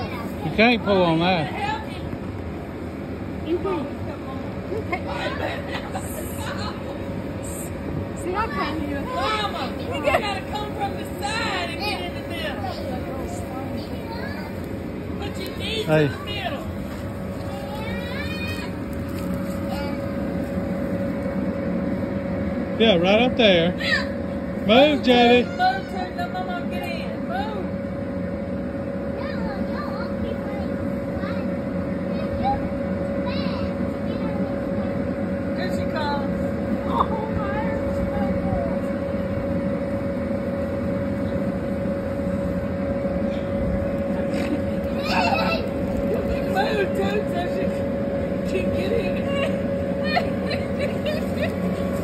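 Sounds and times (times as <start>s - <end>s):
electric air blower rumbling: 0.0s - 52.0s
faint constant hum: 0.0s - 52.0s.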